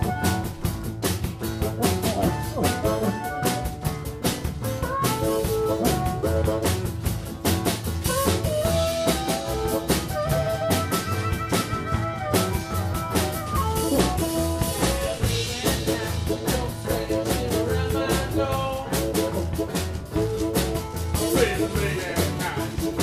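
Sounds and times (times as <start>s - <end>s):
drum kit beat: 0.0s - 23.0s
guitar: 0.0s - 23.0s
harmonica: 0.0s - 23.0s.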